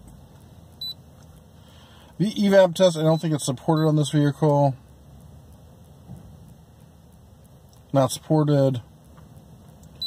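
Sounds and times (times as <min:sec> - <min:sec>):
vehicle cab hiss: 0:01.5 - 0:02.2.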